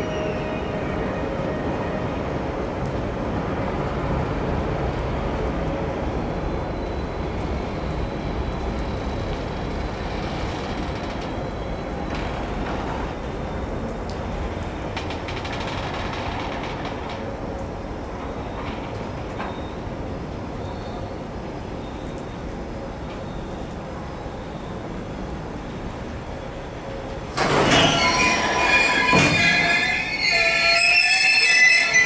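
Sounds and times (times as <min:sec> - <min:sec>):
freight wagons rolling on rails: 0:07.2 - 0:20.5, 0:26.7 - 0:32.0.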